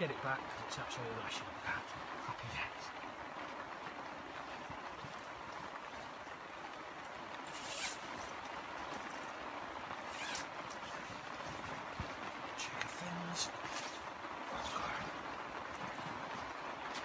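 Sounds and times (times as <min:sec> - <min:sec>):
heavy rain hiss: 0:00.0 - 0:17.0
waterproof clothing rustling: 0:00.0 - 0:17.0.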